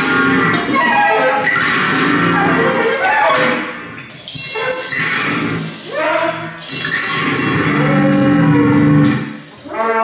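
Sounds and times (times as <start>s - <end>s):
guitar and electronics drone: 0.0s - 5.8s, 7.0s - 9.5s.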